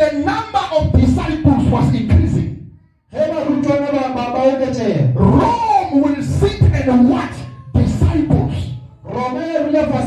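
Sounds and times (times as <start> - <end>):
man shouting into microphone: 0.0 - 10.0.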